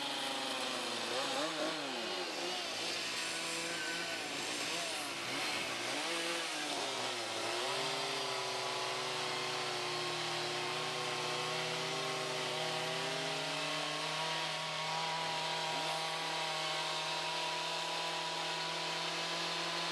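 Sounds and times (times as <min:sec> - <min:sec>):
chainsaw engines running: 0:00.0 - 0:19.9.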